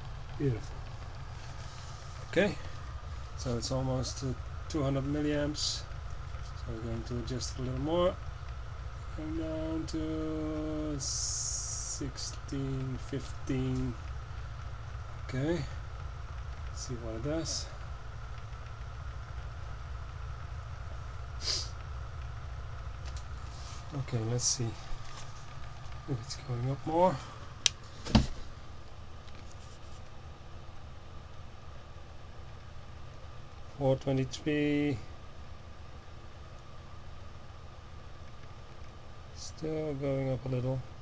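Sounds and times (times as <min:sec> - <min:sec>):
short hiss: 0:21.4 - 0:21.8.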